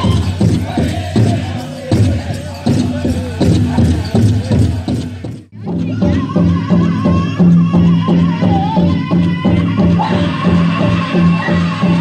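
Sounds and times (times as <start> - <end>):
big drum steady beat: 0.0 - 12.0.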